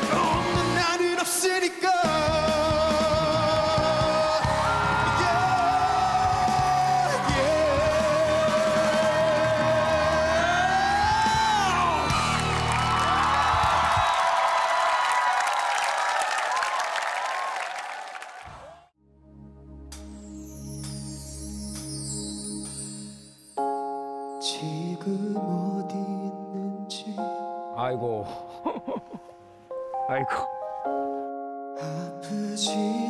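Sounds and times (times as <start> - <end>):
live band playing: 0.0 - 1.2
audience whooping and shouting: 4.4 - 18.9.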